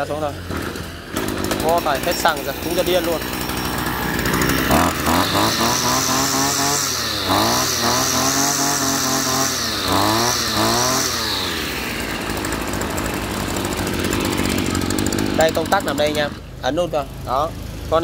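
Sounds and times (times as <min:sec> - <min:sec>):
brush cutter engine revving: 0:00.0 - 0:18.0.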